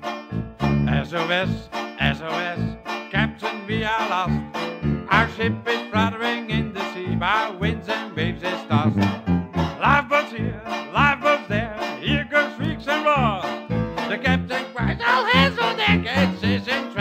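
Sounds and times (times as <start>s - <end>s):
banjo chords: 0.0s - 17.0s
tuba bass notes: 0.0s - 17.0s
jazz band playing: 8.7s - 9.8s.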